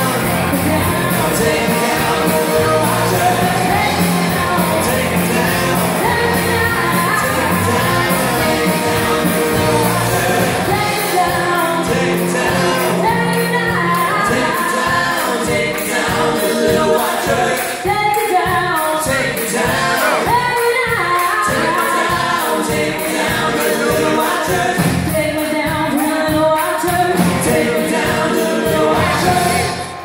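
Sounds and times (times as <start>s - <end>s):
electric guitars: 0.0s - 16.4s
backing vocal harmonies: 0.0s - 30.0s
drums: 0.0s - 30.0s
woman singing lead vocals: 0.0s - 30.0s.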